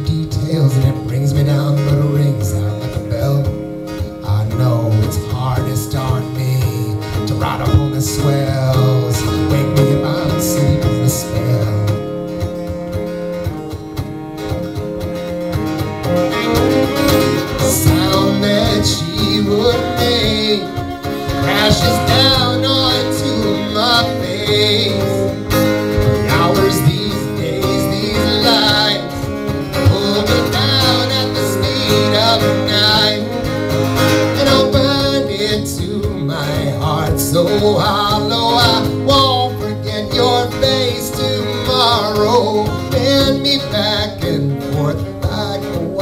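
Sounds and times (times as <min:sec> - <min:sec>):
acoustic guitar strumming: 0:00.0 - 0:46.0
bowed cello: 0:14.1 - 0:35.2.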